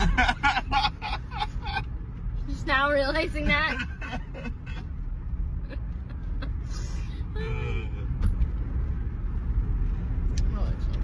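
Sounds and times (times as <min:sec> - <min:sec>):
car driving rumble from inside: 0:00.0 - 0:11.0.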